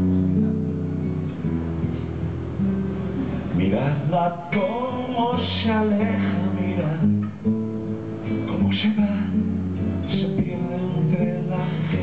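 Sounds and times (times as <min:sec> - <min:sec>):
acoustic guitar through pa: 0:00.0 - 0:12.0.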